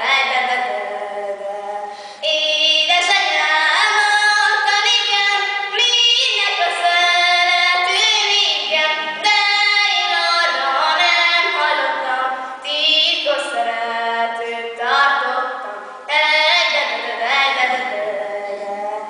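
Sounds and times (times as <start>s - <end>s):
woman singing unaccompanied: 0.0s - 19.0s
woman breathing between phrases: 1.9s - 2.2s.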